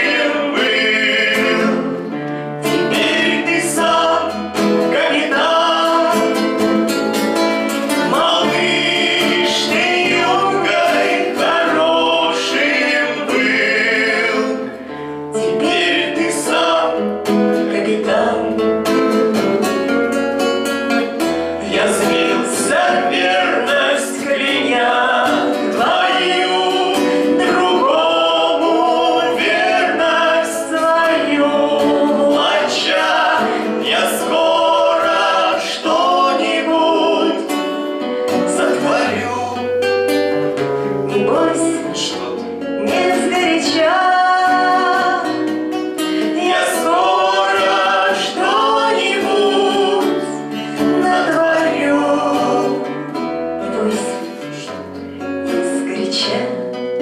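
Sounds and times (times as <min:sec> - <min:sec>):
man and woman singing: 0:00.0 - 0:07.0, 0:07.9 - 0:19.4, 0:21.5 - 0:39.8, 0:41.0 - 0:57.0
classical guitar: 0:00.0 - 0:57.0.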